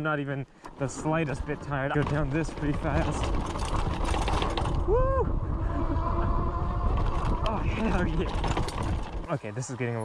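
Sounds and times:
wind on microphone: 0:03.0 - 0:09.2
rider whooping: 0:04.6 - 0:08.6.

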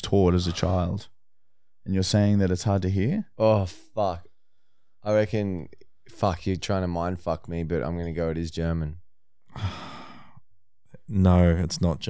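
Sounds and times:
man sighing: 0:09.5 - 0:10.4.

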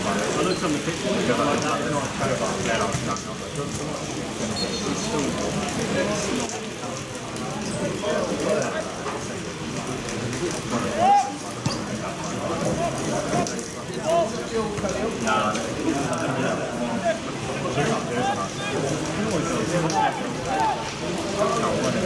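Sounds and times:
rain pattering: 0:00.0 - 0:22.0
spectators talking: 0:00.0 - 0:22.0
players calling out: 0:10.8 - 0:22.0.

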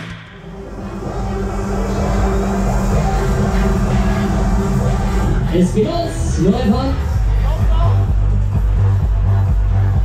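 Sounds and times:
loud bass-heavy music over loudspeakers: 0:00.0 - 0:10.0.

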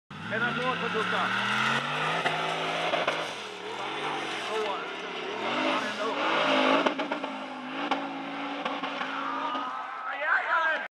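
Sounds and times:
buggy engine revving: 0:00.1 - 0:10.0.

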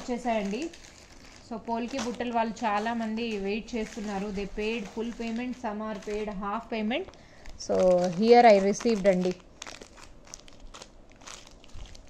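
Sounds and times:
plastic pouches crinkling: 0:00.0 - 0:12.0.

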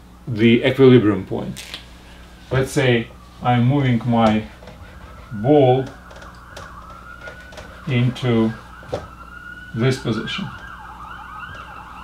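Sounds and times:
siren wailing: 0:02.3 - 0:12.0.

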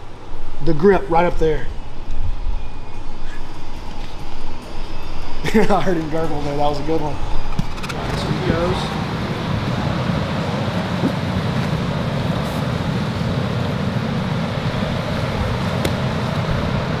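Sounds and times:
low rumbling background noise: 0:00.0 - 0:17.0.

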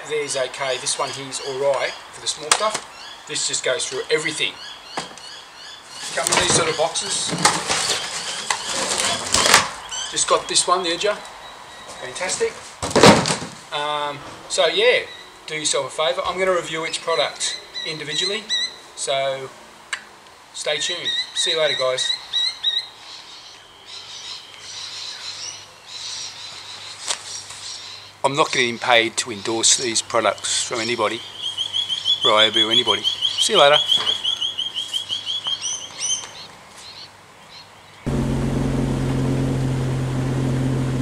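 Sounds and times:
cardboard box scraping rustle: 0:06.1 - 0:09.7
steady low hum: 0:38.1 - 0:41.0.

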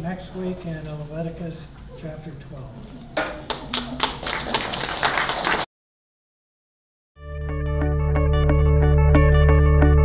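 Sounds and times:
audience applauding: 0:03.2 - 0:05.7.

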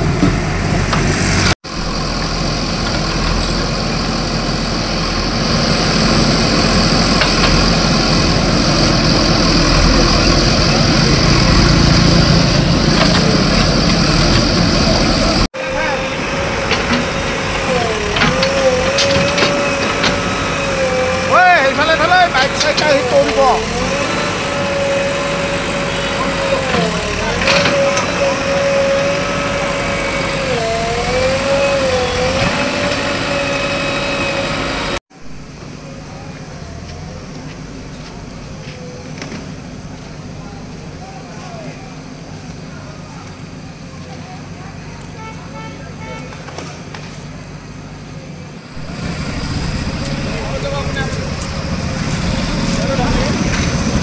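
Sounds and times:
backhoe loader digging: 0:00.0 - 0:35.0, 0:48.6 - 0:54.0
faint voices: 0:48.1 - 0:54.0.

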